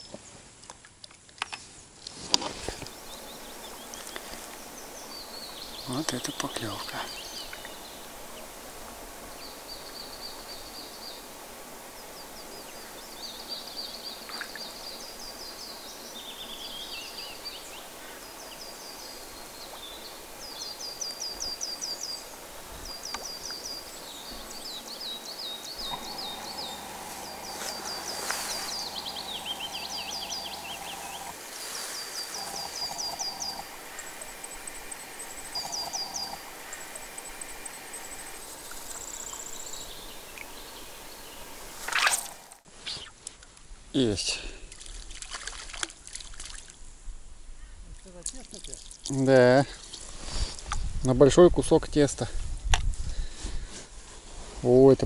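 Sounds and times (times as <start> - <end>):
songbirds singing: 2.6 - 43.2
steady low hum: 2.8 - 42.8.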